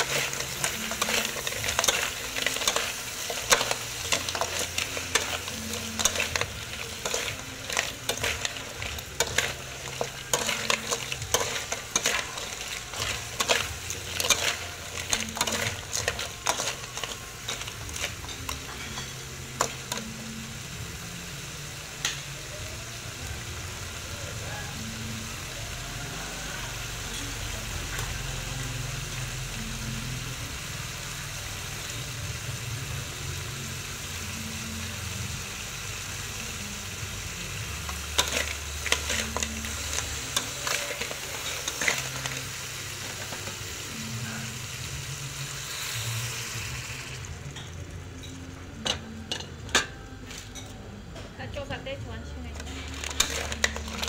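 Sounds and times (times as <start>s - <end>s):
metal spatula scraping wok: 0.0s - 20.2s, 37.9s - 50.7s, 52.6s - 54.0s
food sizzling in wok: 0.0s - 54.0s.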